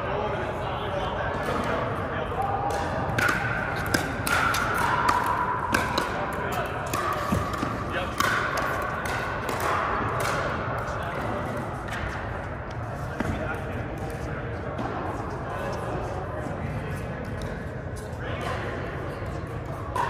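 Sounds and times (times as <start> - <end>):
ball bouncing on court: 2.7 - 12.2.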